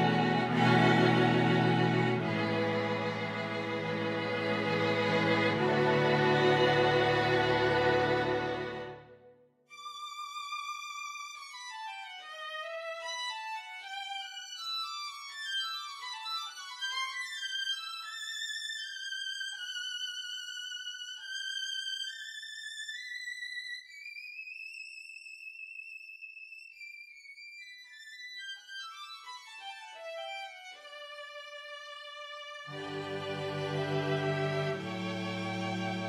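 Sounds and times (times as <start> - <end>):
solo violin playing: 0.0 - 9.2, 30.5 - 36.0.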